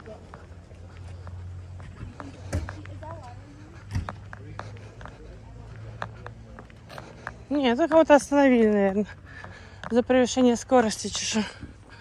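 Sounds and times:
faint voices: 0:00.0 - 0:12.0
footsteps on roadside: 0:00.0 - 0:12.0.

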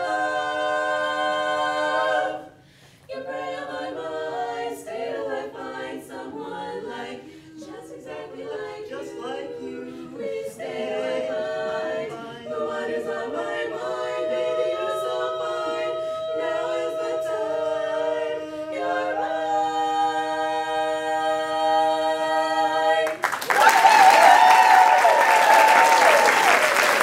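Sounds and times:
women singing in harmony: 0:00.0 - 0:25.2.

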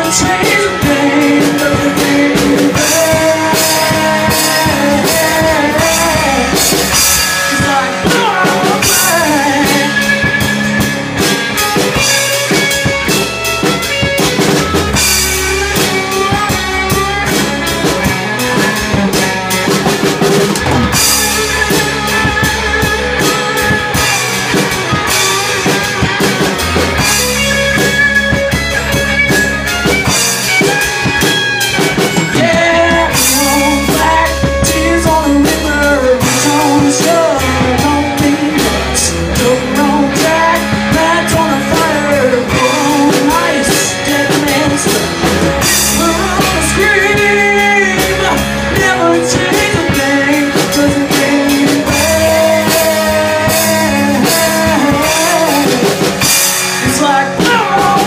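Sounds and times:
drum kit: 0:00.0 - 0:58.0
electric and acoustic guitars: 0:00.0 - 0:58.0
live band playing: 0:00.0 - 0:58.0.

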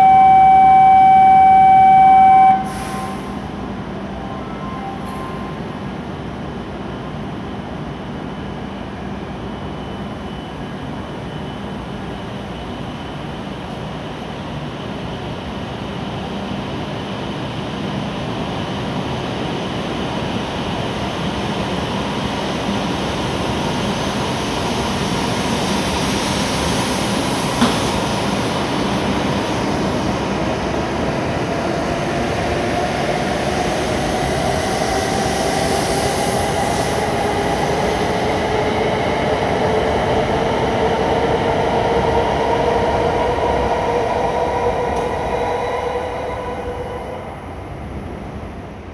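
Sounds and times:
train rolling rush: 0:00.0 - 0:48.9.

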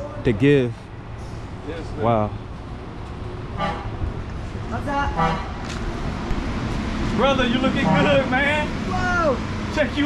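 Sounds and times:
road traffic rumbling: 0:00.0 - 0:10.0
car horn toots: 0:03.6 - 0:03.9, 0:05.1 - 0:05.6, 0:07.7 - 0:08.3.

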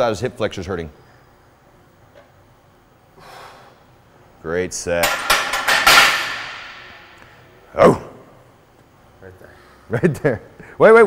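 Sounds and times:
barbell and plates ringing: 0:05.0 - 0:07.1
barbell clanking onto metal hooks: 0:05.0 - 0:07.1.

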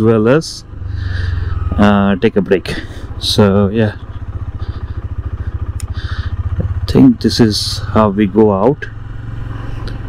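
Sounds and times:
motorcycle engine at low revs: 0:00.0 - 0:10.0.

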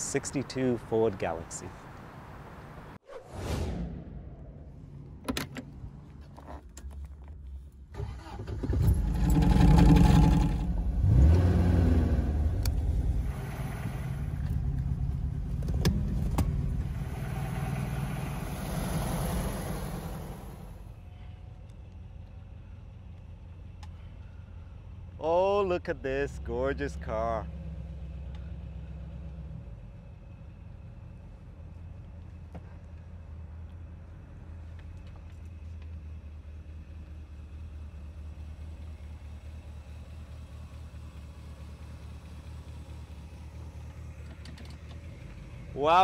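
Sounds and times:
car engine starting and revving: 0:08.0 - 0:20.9.

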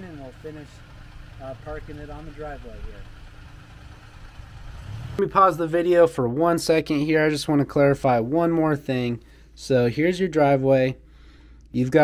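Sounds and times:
truck engine idling: 0:00.0 - 0:05.2.

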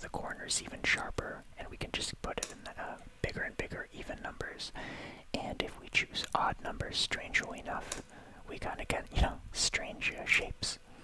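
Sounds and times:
person whispering softly: 0:00.0 - 0:11.0.

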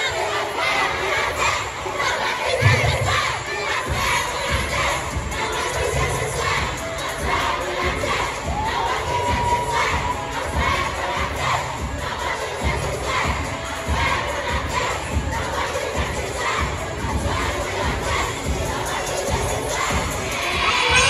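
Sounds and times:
children cheering and shouting: 0:00.0 - 0:21.0.

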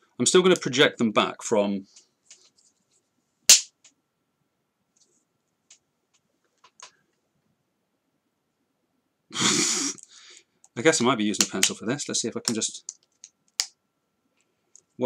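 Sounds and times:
short burst of breath: 0:09.4 - 0:10.5.

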